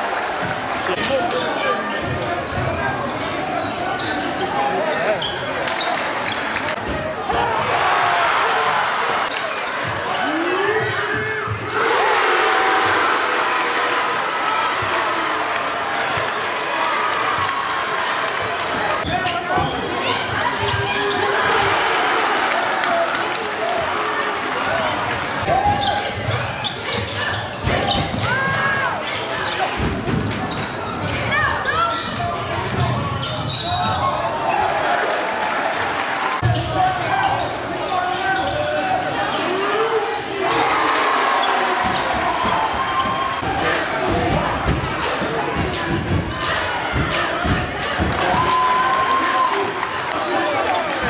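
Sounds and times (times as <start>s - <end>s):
voices echoing in gym: 0.8s - 17.1s, 17.8s - 35.6s, 36.4s - 51.0s.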